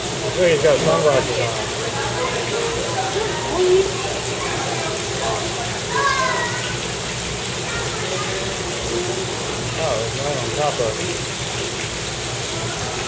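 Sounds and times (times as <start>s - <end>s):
indistinct voices: 0.0s - 11.2s
water rushing: 0.0s - 13.0s.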